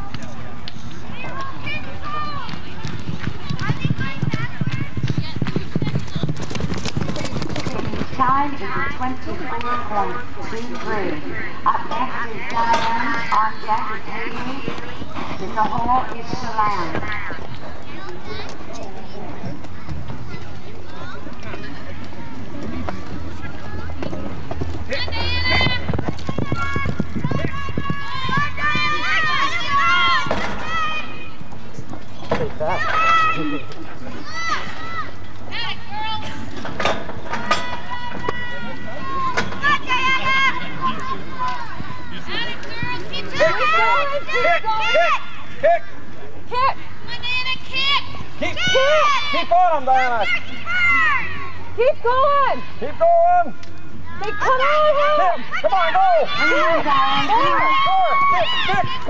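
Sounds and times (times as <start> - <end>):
horse hoofbeats galloping on dirt: 1.4 - 9.8, 13.1 - 32.2
onlookers shouting and whooping: 25.0 - 31.2, 46.6 - 59.0.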